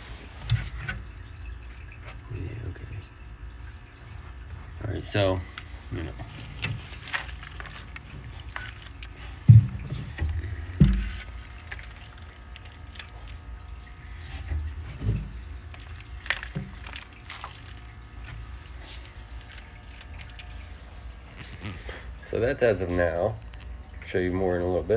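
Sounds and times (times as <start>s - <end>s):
dull thumps: 9.2s - 11.9s.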